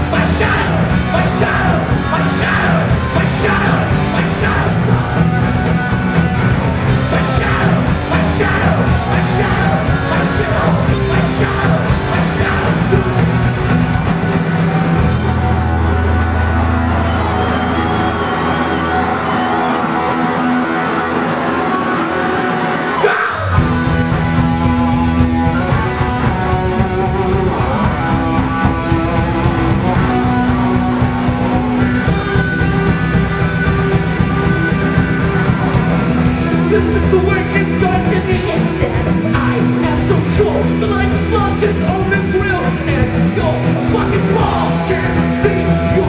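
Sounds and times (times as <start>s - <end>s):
punk rock band playing live: 0.0s - 46.0s.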